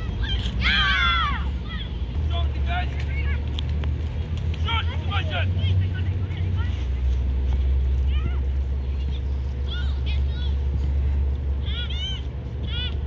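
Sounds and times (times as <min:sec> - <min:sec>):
children shouting: 0:00.0 - 0:02.0
steady low rumble: 0:00.0 - 0:13.0.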